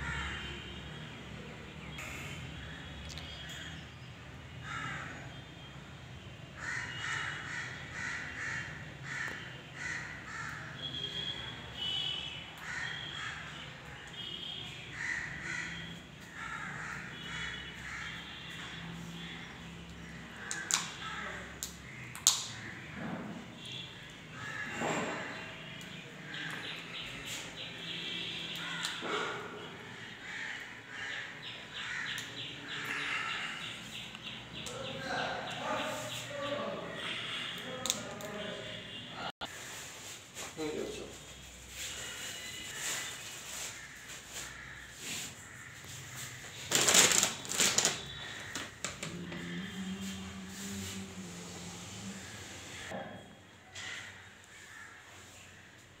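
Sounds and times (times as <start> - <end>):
crows cawing: 0.0 - 0.7, 4.6 - 5.4, 6.6 - 11.1, 11.8 - 39.8, 41.1 - 51.0, 52.1 - 55.8.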